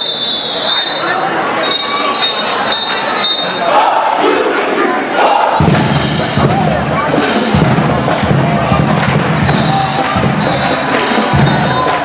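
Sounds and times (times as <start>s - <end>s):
crowd cheering and shouting: 0.0s - 12.0s
marching band playing: 5.2s - 12.0s.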